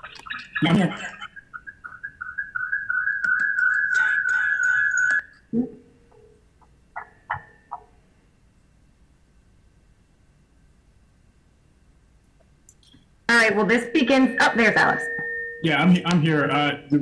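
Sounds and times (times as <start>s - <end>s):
laugh: 0.3s - 2.0s
audio feedback whine: 12.8s - 17.0s.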